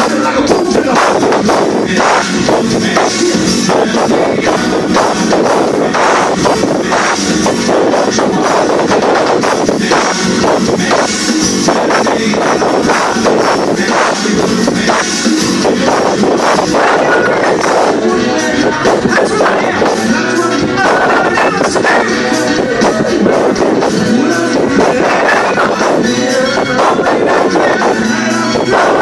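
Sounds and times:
drum kit beat: 0.0s - 29.0s
electric guitars: 0.0s - 29.0s.

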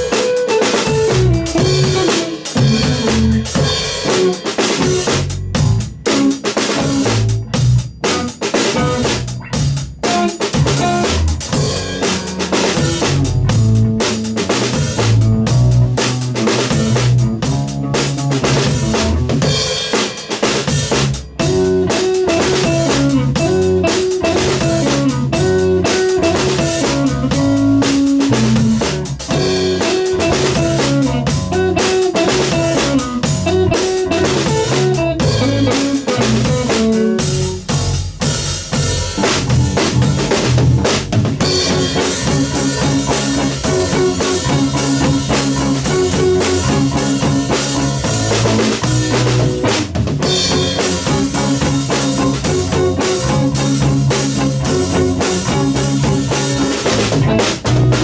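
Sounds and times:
drum kit: 0.0s - 58.0s
electric bass: 0.0s - 58.0s
electric guitar: 0.0s - 58.0s.

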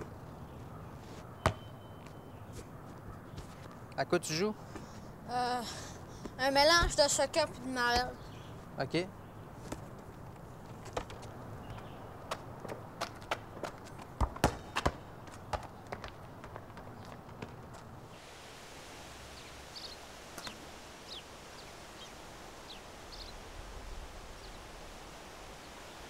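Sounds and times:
faint bird chirps: 0.3s - 3.8s
soccer ball thudding on asphalt: 1.4s - 2.2s, 6.2s - 7.2s, 9.6s - 17.9s.

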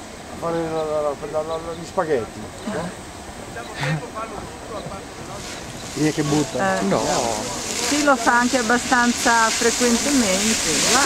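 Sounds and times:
geyser venting steam and water: 0.0s - 11.0s.

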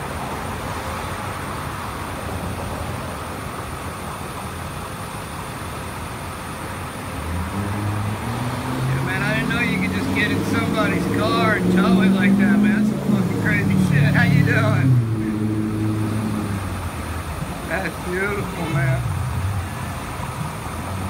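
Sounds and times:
street traffic: 0.0s - 21.0s
man talking: 8.9s - 15.4s, 17.5s - 19.1s.

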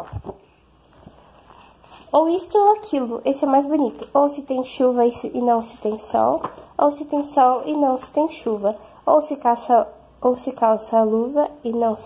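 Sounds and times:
book pages turning: 0.0s - 3.0s, 5.3s - 8.5s.

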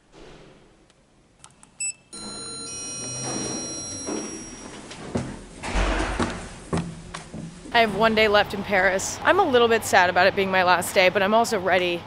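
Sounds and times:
steady background noise: 0.0s - 12.0s
elevator chime: 1.8s - 5.4s.

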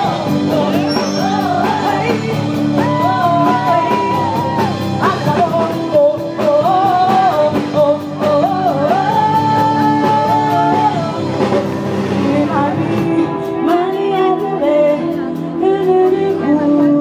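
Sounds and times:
live band with keyboard and drums: 0.0s - 17.0s
woman singing: 0.0s - 17.0s.

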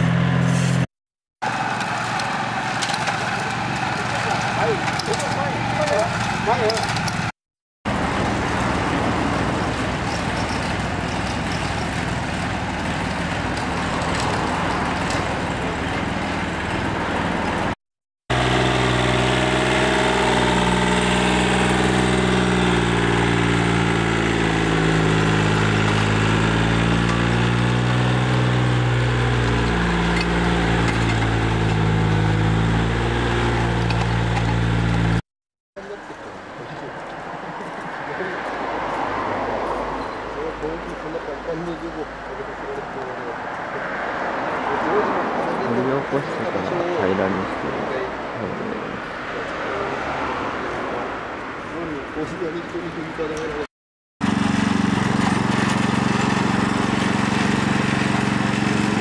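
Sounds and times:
tiller engine churning soil: 1.4s - 7.3s, 7.9s - 35.2s, 53.2s - 59.0s
tractor with tiller running: 1.4s - 7.3s, 7.9s - 17.7s, 18.3s - 35.2s, 54.2s - 59.0s.

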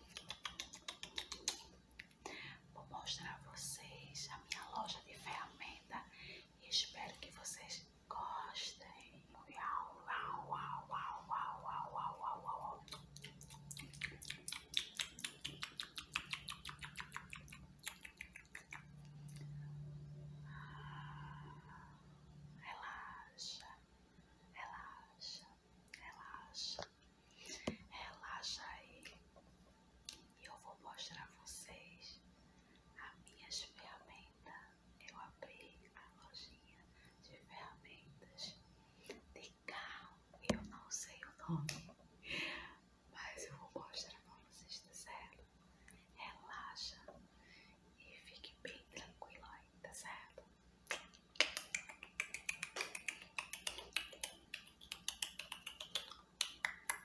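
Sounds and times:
person whispering: 2.2s - 18.9s, 20.4s - 23.8s, 24.5s - 29.2s, 30.4s - 32.2s, 33.0s - 38.6s, 39.3s - 41.7s, 43.2s - 45.4s, 46.1s - 47.2s, 48.0s - 50.4s.

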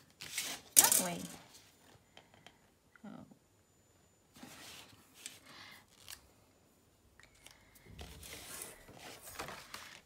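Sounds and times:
paper rustling under hand: 7.9s - 10.0s.

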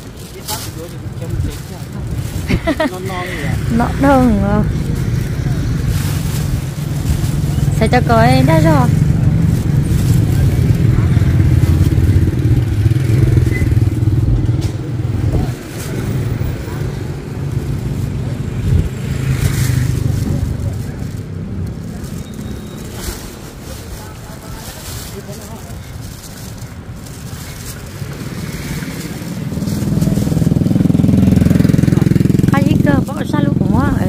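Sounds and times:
vehicle engine running: 0.0s - 34.0s.

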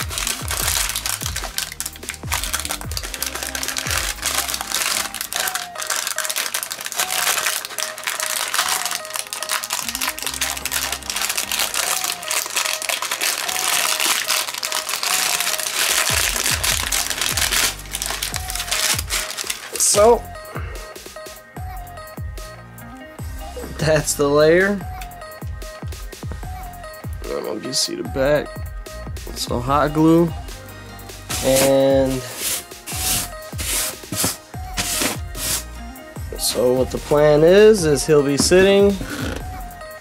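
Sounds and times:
music beat with repeating melody: 0.0s - 6.2s, 8.5s - 12.6s, 15.2s - 40.0s
paper crinkling and crackling: 0.0s - 20.0s, 31.3s - 35.6s.

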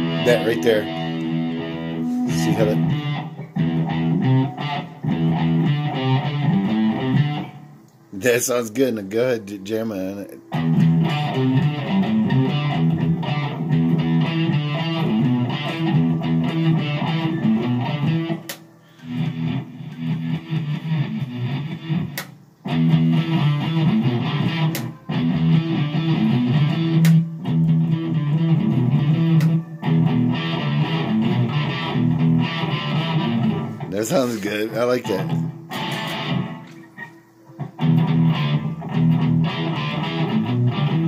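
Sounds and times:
electric guitar riff: 0.0s - 7.9s, 9.9s - 41.0s.

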